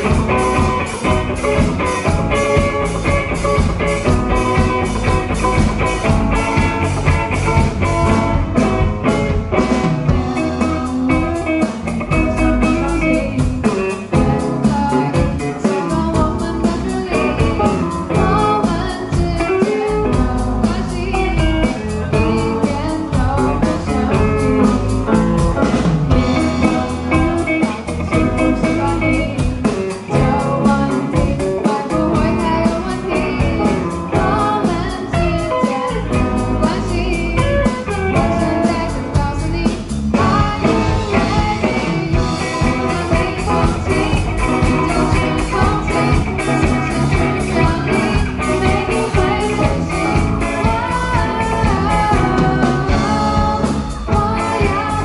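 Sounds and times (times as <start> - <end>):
drum kit beat: 0.0 - 55.0
electric guitars: 0.0 - 55.0
girl singing lead: 0.0 - 55.0
keyboard: 0.0 - 55.0.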